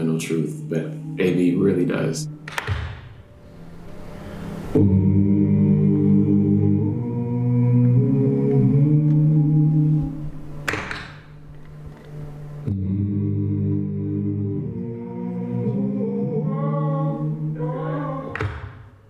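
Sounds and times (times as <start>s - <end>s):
man singing low sustained notes: 0.0s - 2.5s, 4.6s - 10.6s, 12.4s - 18.2s.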